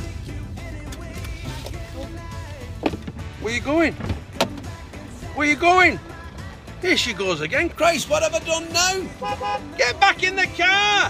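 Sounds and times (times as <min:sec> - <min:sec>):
car engine and road rumble: 0:00.0 - 0:11.0
music in car: 0:00.0 - 0:11.0.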